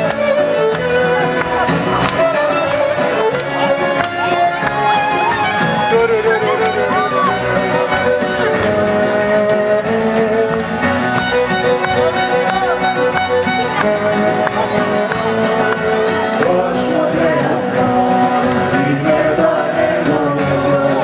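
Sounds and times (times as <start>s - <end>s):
violin melody: 0.0s - 20.6s
strummed acoustic guitar: 0.0s - 21.0s.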